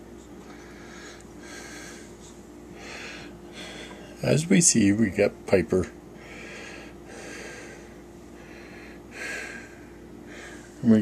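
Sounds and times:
faint steady hum: 0.0 - 11.0
person breathing: 0.4 - 4.2, 6.2 - 10.8.

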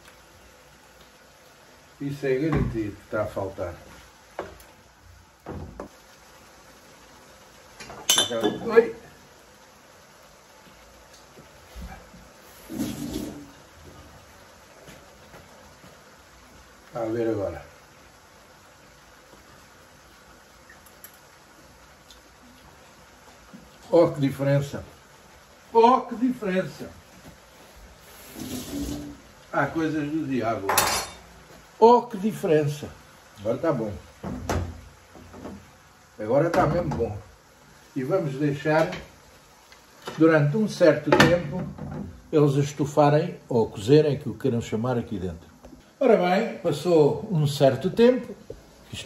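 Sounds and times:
sauce simmering in a wok: 0.0 - 49.0.

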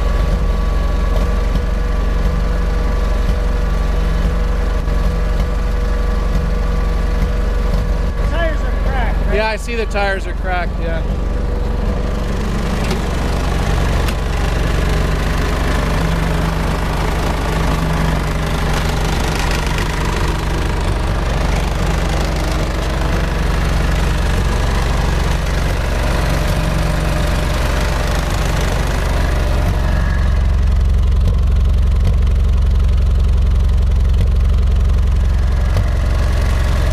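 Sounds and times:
tractor engine idling: 0.0 - 36.9.

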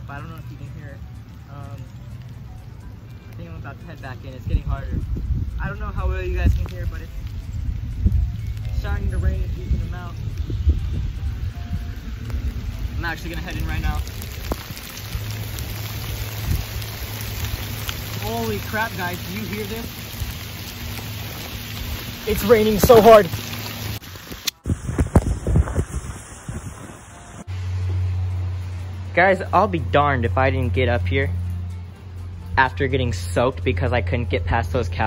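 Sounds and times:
steady rain falling: 0.0 - 32.4
wind buffeting microphone: 4.3 - 27.5.

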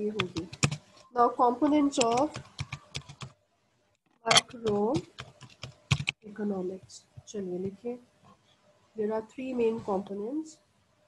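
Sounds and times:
keystrokes on computer keyboard: 0.2 - 0.9, 1.9 - 3.4, 4.3 - 6.2.

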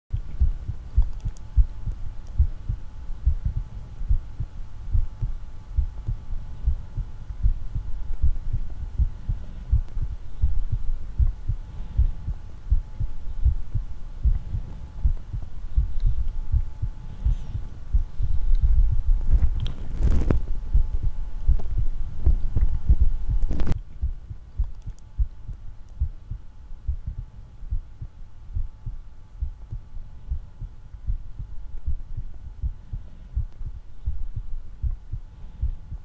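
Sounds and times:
faint steady hum: 0.1 - 36.0
low thumps on camera microphone: 18.0 - 26.2.

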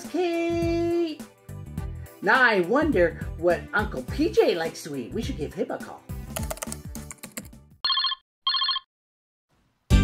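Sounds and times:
music: 0.0 - 7.8
telephone trilling rings: 7.8 - 8.9.

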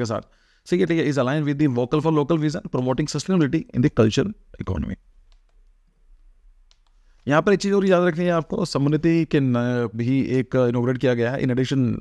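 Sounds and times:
computer mouse clicks: 5.2 - 6.0, 6.6 - 7.3.

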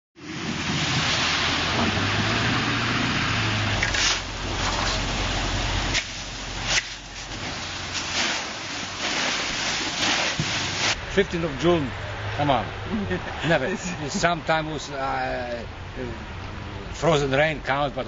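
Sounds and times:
hail pelting down: 0.5 - 11.0.

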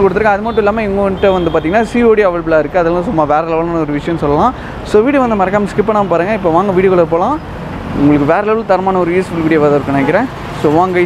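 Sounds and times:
man talking: 0.0 - 11.0
street traffic noise: 0.0 - 11.0.

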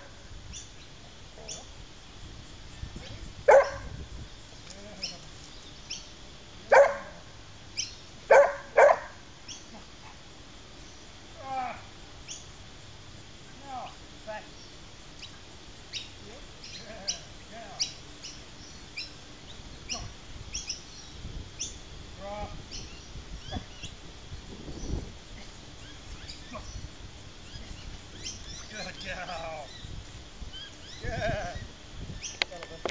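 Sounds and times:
wind rumble on microphone: 1.7 - 4.6, 19.9 - 32.9
dog barking: 3.5 - 3.9, 6.7 - 7.2, 8.3 - 9.2.

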